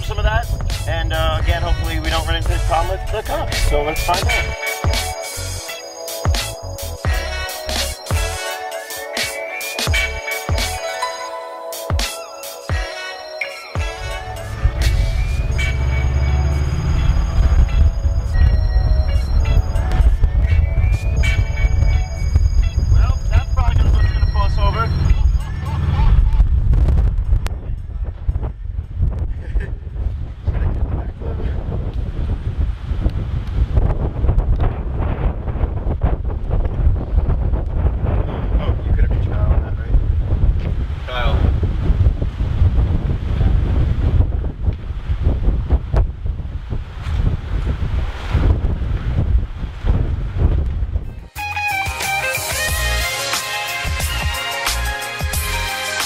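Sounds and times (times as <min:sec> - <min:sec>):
wind buffeting microphone: 0:00.0 - 0:04.6, 0:14.0 - 0:51.4
vehicle noise: 0:00.0 - 0:08.8, 0:12.8 - 0:51.3.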